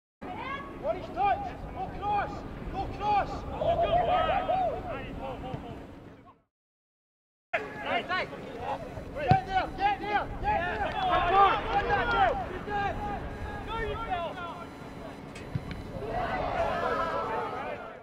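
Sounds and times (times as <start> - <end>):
open-air field noise: 0.2 - 6.4, 7.6 - 18.0
voices shouting: 0.3 - 5.0, 9.3 - 14.7, 15.9 - 18.0.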